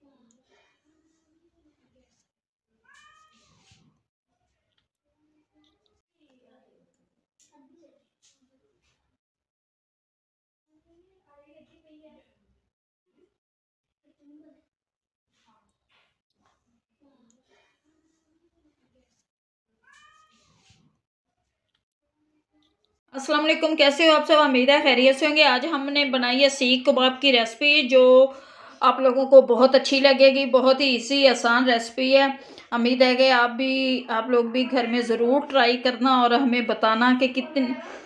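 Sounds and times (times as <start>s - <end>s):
faint high-pitched cry: 2.8s - 3.7s, 19.8s - 20.6s
cat meow: 2.8s - 3.8s, 19.8s - 20.8s.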